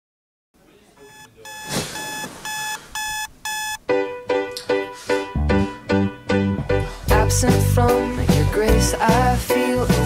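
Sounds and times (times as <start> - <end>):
alarm clock beeping: 1.1 - 3.8
music: 3.9 - 10.0.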